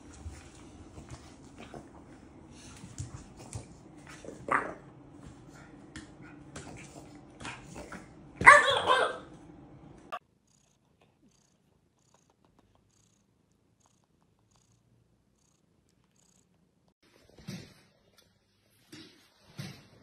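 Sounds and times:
cat purring: 10.4 - 16.9.

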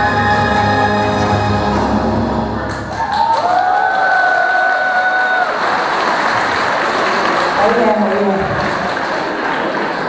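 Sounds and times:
audience applause and cheering: 2.3 - 10.0.

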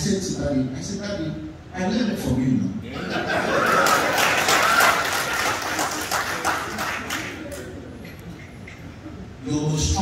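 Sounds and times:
audience laughing: 2.9 - 7.2
scattered clapping: 3.8 - 7.7.

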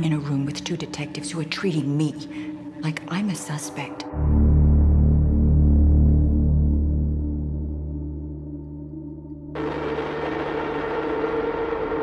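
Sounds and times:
dense rushing noise drone: 9.6 - 12.0.

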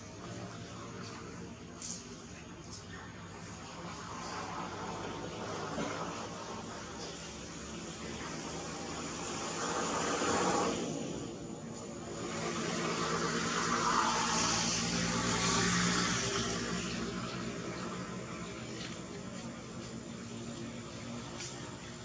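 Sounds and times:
vehicle engine rumbling past: 3.0 - 22.0.

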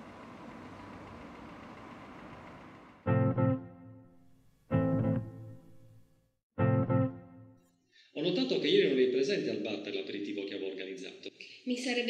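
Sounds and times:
distant traffic: 0.0 - 3.1.

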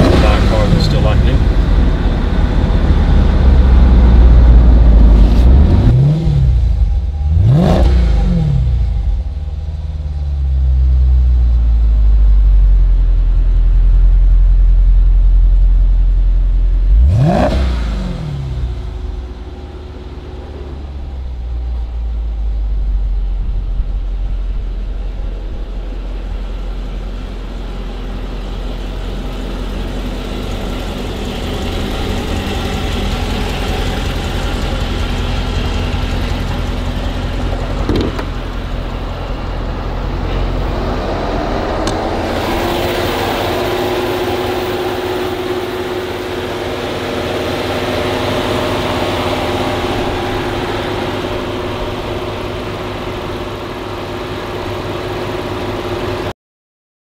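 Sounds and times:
car engine rumbling: 0.0 - 56.3.

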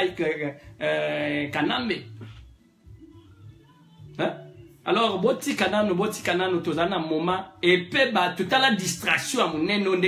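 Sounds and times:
man talking: 0.0 - 2.2, 4.2 - 10.0.

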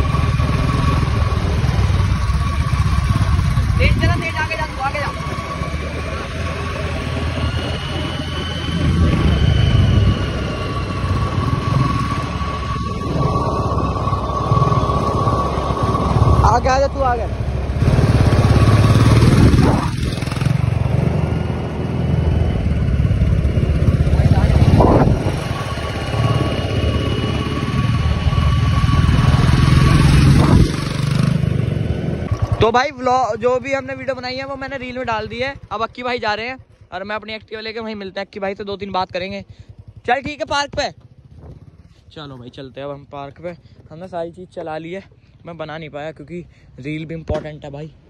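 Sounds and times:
motorcycle engine rumbling: 0.0 - 48.0.

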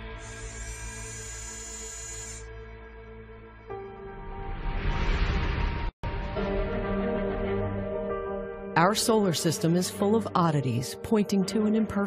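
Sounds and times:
ambient background music: 0.0 - 12.0.

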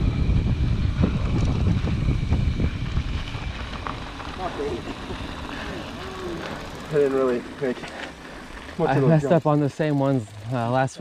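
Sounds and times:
wind rumble on microphone: 0.0 - 6.5
bike tyres rolling on gravel: 0.4 - 11.0
faint voices: 4.2 - 11.0.

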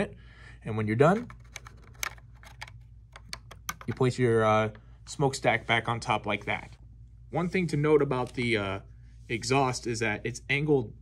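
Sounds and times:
faint steady hum: 0.0 - 11.0
light irregular clicks and taps: 1.2 - 4.1.

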